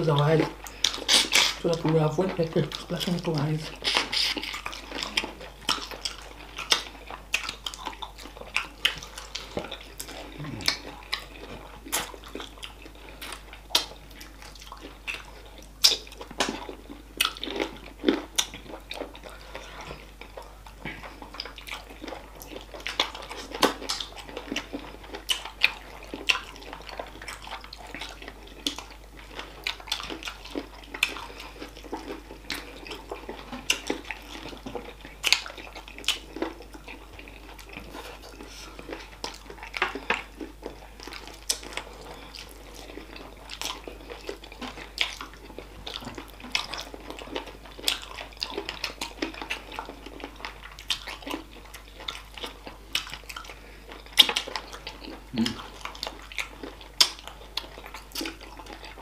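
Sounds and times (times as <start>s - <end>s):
wet chewing and lip-smacking: 0.0s - 59.0s.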